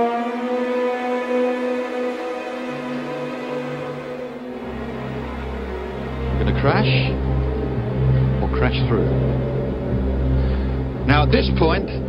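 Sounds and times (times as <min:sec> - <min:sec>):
low engine drone: 0:00.0 - 0:12.0.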